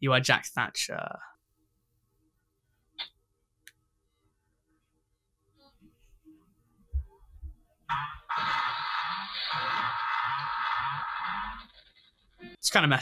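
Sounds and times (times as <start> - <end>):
distorted static noise: 7.9 - 12.4.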